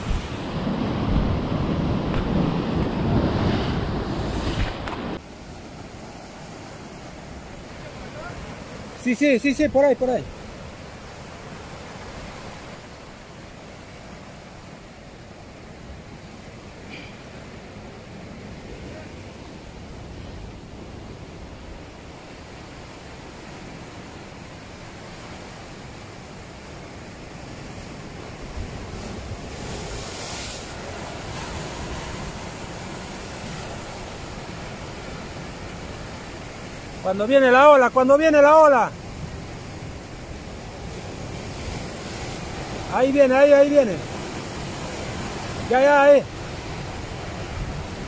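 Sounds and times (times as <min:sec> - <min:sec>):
wind on microphone: 0:00.0 - 0:05.3, 0:46.4 - 0:48.0
surf breaking against rocks: 0:25.3 - 0:48.0.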